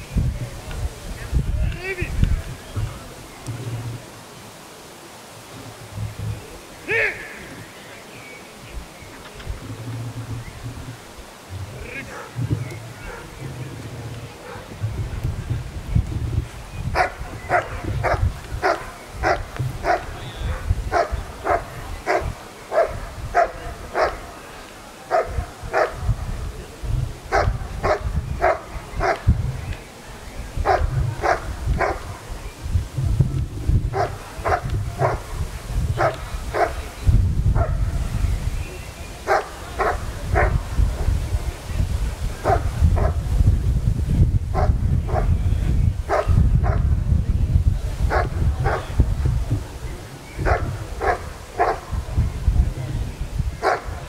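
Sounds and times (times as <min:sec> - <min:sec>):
dog barking: 0:14.4 - 0:14.7, 0:17.0 - 0:24.2, 0:25.1 - 0:26.0, 0:27.3 - 0:29.2, 0:30.6 - 0:32.0, 0:33.9 - 0:35.2, 0:36.0 - 0:36.8, 0:37.6 - 0:37.8, 0:39.3 - 0:40.6, 0:42.4 - 0:43.2, 0:44.6 - 0:45.3, 0:46.1 - 0:46.8, 0:48.1 - 0:48.9, 0:50.4 - 0:51.9, 0:53.6 - 0:54.0.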